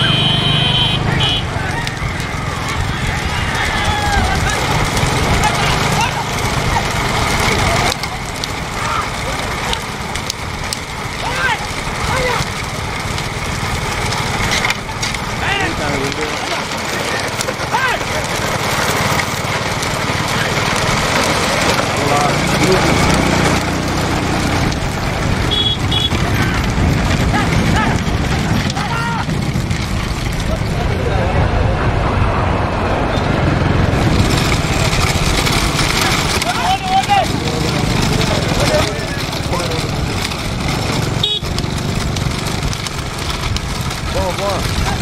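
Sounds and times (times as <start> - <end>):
hooves: 0.0 - 31.1, 33.6 - 45.0
cart wheels rolling: 0.0 - 45.0
rumble of engines: 0.0 - 45.0
man shouting: 11.2 - 12.4, 17.6 - 18.1, 27.3 - 28.0, 28.7 - 29.3, 36.4 - 37.4
wind rushing: 23.1 - 36.4
person shouting: 28.8 - 29.3.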